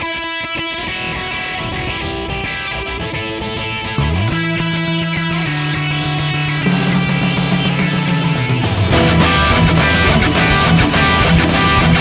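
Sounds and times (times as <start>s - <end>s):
fast electric guitar rock: 0.0s - 12.0s.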